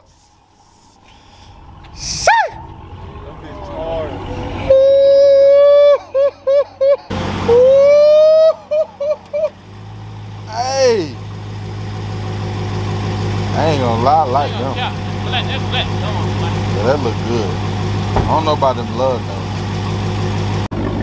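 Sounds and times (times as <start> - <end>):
engine idling: 0.0 - 21.0
people talking: 3.0 - 5.2, 10.5 - 11.2, 13.5 - 17.6, 18.2 - 19.5
person exclaiming: 4.6 - 6.3, 10.5 - 11.2.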